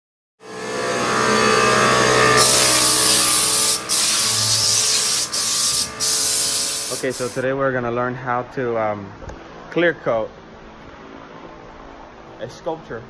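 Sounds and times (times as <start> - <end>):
steady hum: 0.5 - 7.6
compressed air hissing: 2.4 - 7.4.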